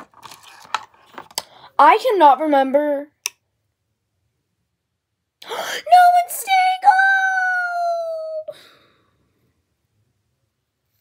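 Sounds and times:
girl breathing: 1.4s - 1.8s, 5.4s - 6.0s, 8.5s - 9.6s
girl whining with effort: 6.8s - 8.6s.

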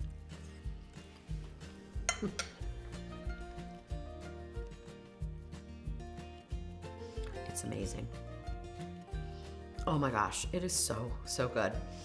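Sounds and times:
music with steady bass beat: 0.0s - 9.7s
fork clinking on plate: 2.1s - 2.6s.

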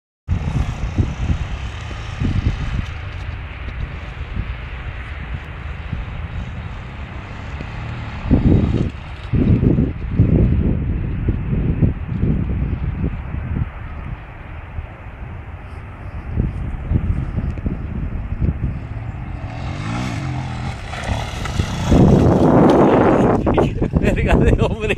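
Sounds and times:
distant motorcycle engine: 0.3s - 10.6s, 16.9s - 23.8s
wind buffeting microphone: 0.3s - 24.9s.

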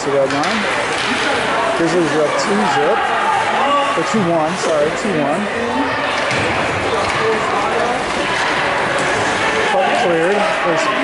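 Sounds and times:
spectators and players voices: 0.0s - 11.0s.

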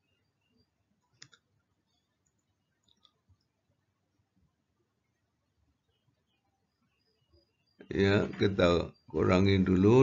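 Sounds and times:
computer mouse clicks: 1.0s - 3.5s.

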